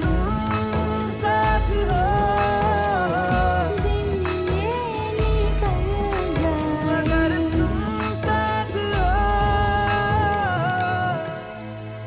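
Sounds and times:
slow ballad music: 0.0s - 12.0s.

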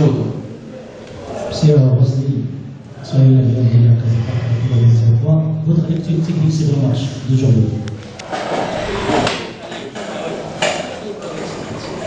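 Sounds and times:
voices in room: 0.0s - 12.0s.

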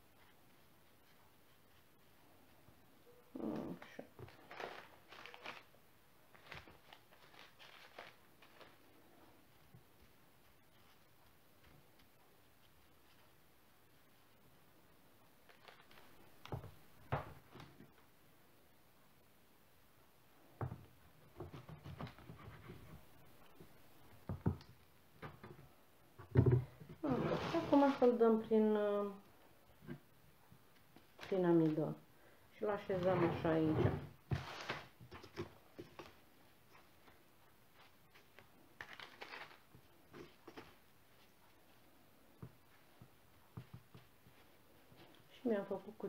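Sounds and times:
faint rustles and light taps: 32.8s - 45.4s.

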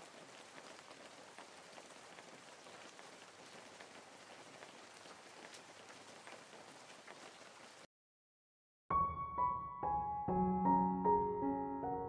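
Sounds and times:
faint steady rain: 0.0s - 7.9s.

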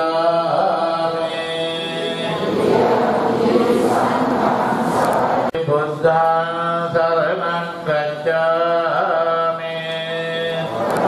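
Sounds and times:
man chanting alone: 0.0s - 2.4s, 5.5s - 10.8s
congregation chanting: 0.0s - 11.0s.

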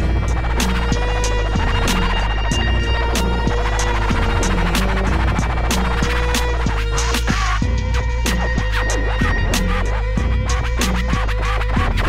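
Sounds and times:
hip hop beat: 0.0s - 12.0s
turntable scratching: 0.0s - 12.0s.

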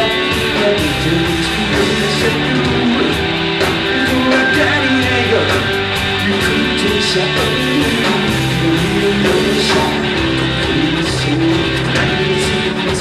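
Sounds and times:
drum kit with cymbal hits: 0.0s - 13.0s
electric guitar: 0.0s - 13.0s.

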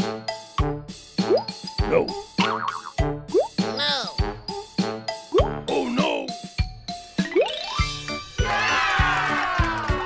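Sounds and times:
children's background music: 0.0s - 10.0s.

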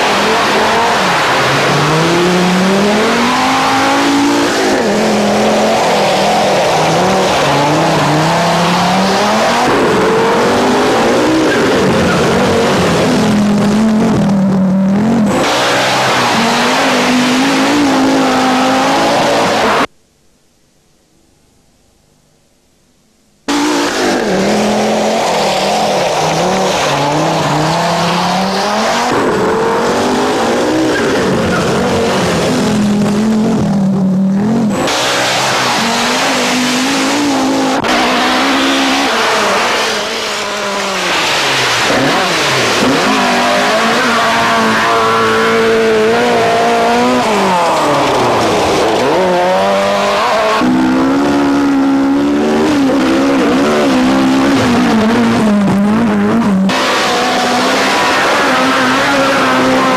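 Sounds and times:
rally car engines at high revs: 0.0s - 19.9s, 23.5s - 59.9s.

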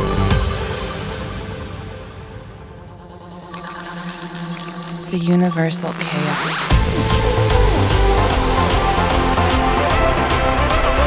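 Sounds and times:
faint high synth chords: 3.1s - 7.3s.

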